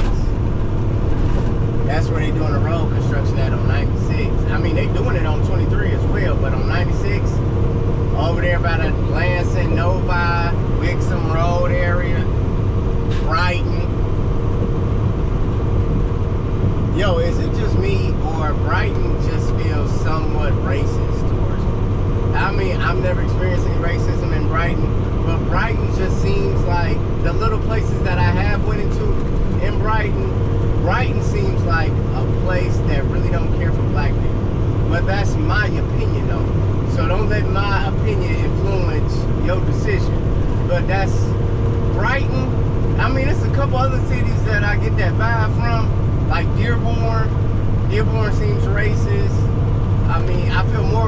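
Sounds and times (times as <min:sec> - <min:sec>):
person talking: 0:00.0 - 0:00.4, 0:01.9 - 0:07.4, 0:08.2 - 0:12.3, 0:13.1 - 0:13.9, 0:16.9 - 0:21.7, 0:22.3 - 0:34.3, 0:34.9 - 0:49.4, 0:50.0 - 0:51.0
road noise: 0:00.0 - 0:51.0
truck engine rumble: 0:00.0 - 0:51.0.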